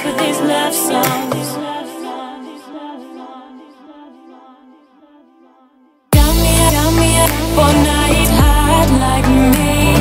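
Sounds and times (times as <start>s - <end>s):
pop love song: 0.0s - 10.0s.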